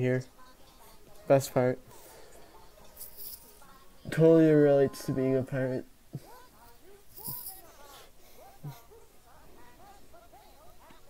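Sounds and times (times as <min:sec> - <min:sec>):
faint singing: 0:00.0 - 0:11.0
quiet backing music: 0:00.0 - 0:11.0.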